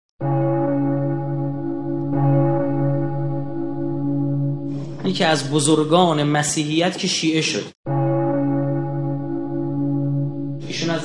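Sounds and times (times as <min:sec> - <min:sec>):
deep bell ringing: 0:00.2 - 0:06.4, 0:07.9 - 0:11.0.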